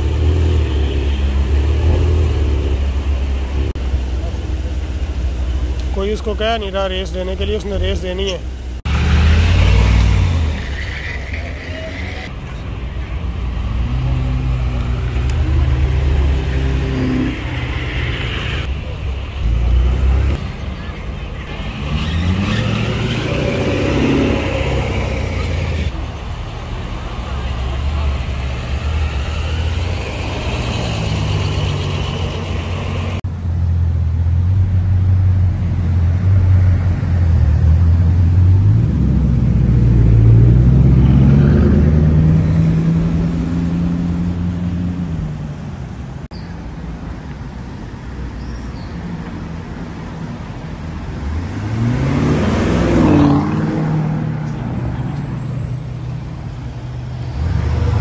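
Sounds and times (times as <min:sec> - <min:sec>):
car engines driving slowly past: 0:00.0 - 0:58.0
people talking: 0:04.0 - 0:08.5, 0:20.4 - 0:22.8, 0:26.5 - 0:28.6
car engine revving: 0:19.4 - 0:33.2, 0:34.8 - 0:45.2, 0:51.1 - 0:55.2.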